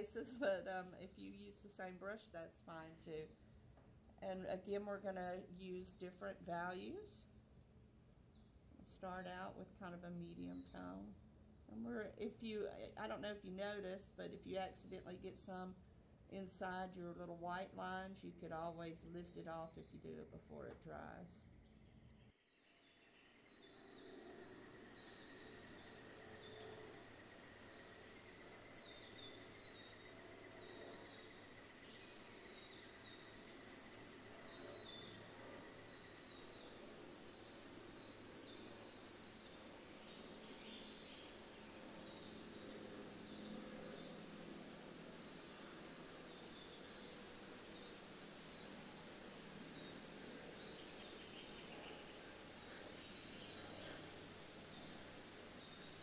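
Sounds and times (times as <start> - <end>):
background hiss: 0.0 - 19.5, 20.4 - 56.0
birds chirping: 18.5 - 56.0.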